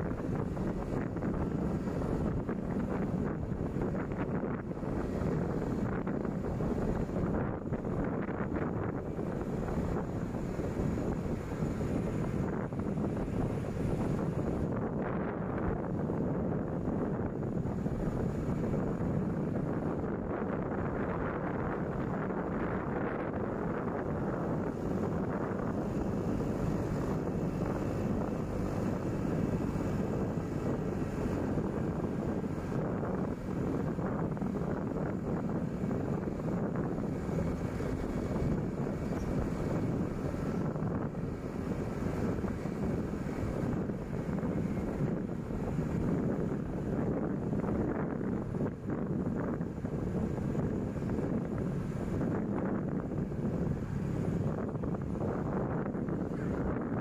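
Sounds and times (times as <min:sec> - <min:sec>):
vehicle engine and road rumble: 0:00.0 - 0:57.0
wind noise on microphone: 0:00.0 - 0:57.0.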